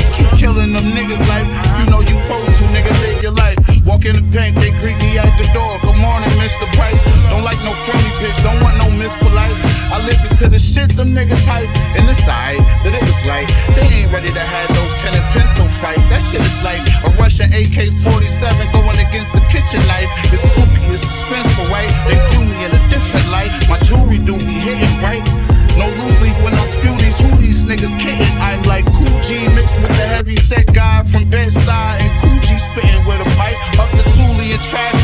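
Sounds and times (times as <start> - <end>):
heavy bass beat: 0.0 - 35.0
rapping over a beat: 0.0 - 35.0.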